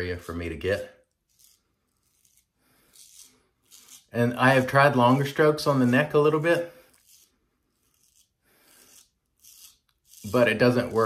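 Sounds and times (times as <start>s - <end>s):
razor scraping stubble: 0.0s - 11.0s.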